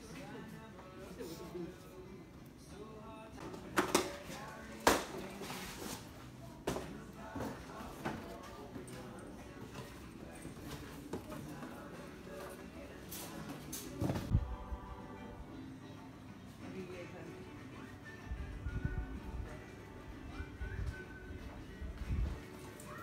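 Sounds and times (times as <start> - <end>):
background music: 0.0 - 23.0.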